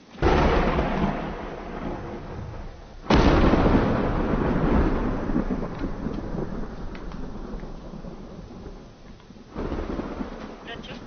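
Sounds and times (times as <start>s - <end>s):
thunder rumbling: 0.0s - 11.0s
thunder clap: 0.2s - 11.0s.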